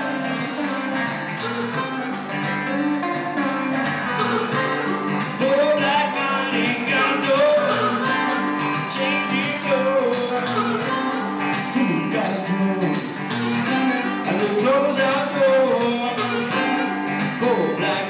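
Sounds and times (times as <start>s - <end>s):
blues guitar accompaniment: 0.0s - 18.0s.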